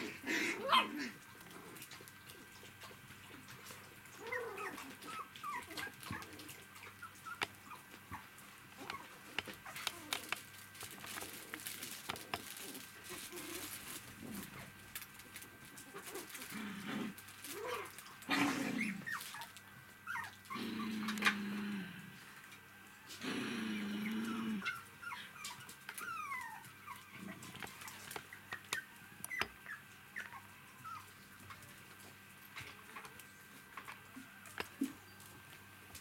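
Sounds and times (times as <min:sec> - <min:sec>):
puppies whining and squeaking: 0:04.1 - 0:14.0, 0:17.5 - 0:20.6, 0:24.0 - 0:35.8.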